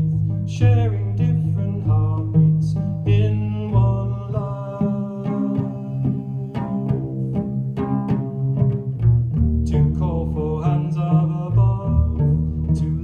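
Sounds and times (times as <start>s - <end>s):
plucked cello notes: 0.0s - 13.0s
sustained low cello notes: 0.0s - 13.0s.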